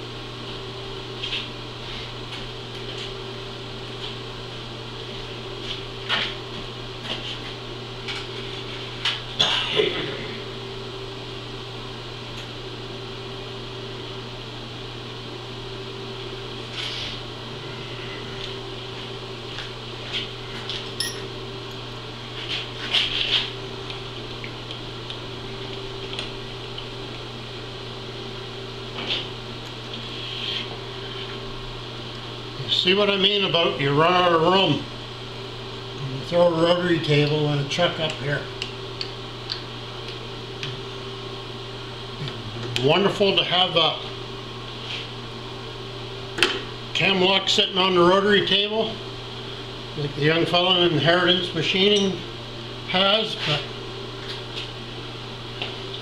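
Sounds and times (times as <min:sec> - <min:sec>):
machine shop low hum: 0:00.0 - 0:56.0
metallic clinks of tools: 0:21.0 - 0:21.3.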